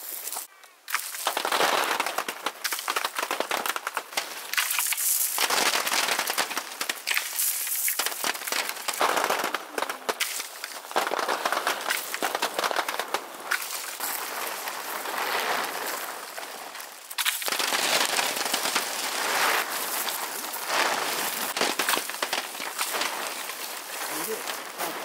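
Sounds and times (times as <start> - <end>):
fruit pattering onto plastic tarp: 0.4 - 25.0.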